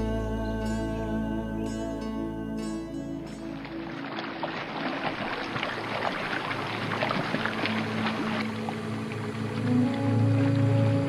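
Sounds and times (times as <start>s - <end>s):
soft music: 0.0s - 11.0s
water sloshing and dripping: 3.2s - 11.0s.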